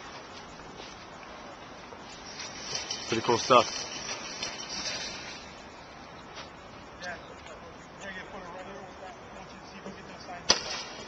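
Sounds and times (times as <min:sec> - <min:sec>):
faint voices: 0:06.8 - 0:11.0.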